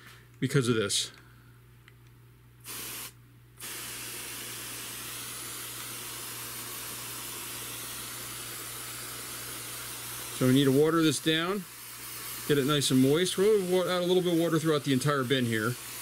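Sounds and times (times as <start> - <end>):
water spraying from sprayer wand: 2.7 - 16.0.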